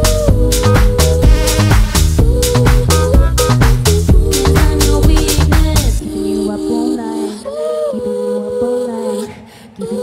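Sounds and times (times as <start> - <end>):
held keyboard chords: 0.0 - 6.0
person singing: 0.0 - 10.0.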